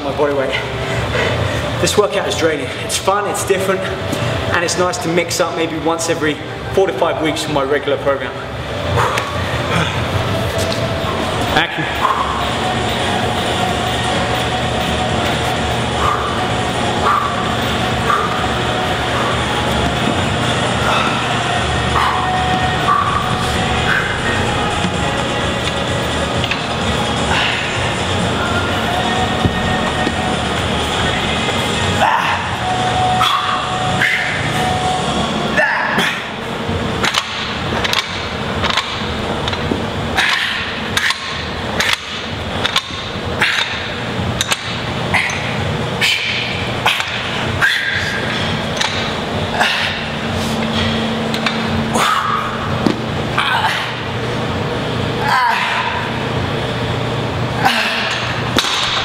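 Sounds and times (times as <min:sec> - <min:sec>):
background music with low drone: 0:00.0 - 0:59.0
metallic barbell clanks: 0:37.0 - 0:39.6, 0:40.2 - 0:49.2, 0:57.8 - 0:59.0.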